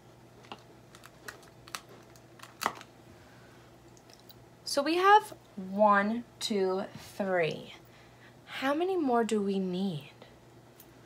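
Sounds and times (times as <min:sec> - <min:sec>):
hands handling sticky tape: 0:00.4 - 0:02.9.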